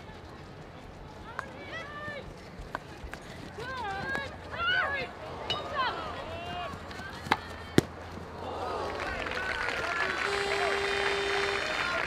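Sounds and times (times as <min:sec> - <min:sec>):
players shouting: 0:03.6 - 0:12.0.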